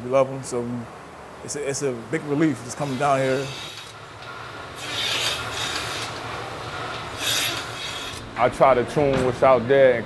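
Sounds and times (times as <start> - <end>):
milking vacuum hum: 1.9 - 9.2
hiss of air into teat cups: 4.7 - 6.2, 6.9 - 8.2.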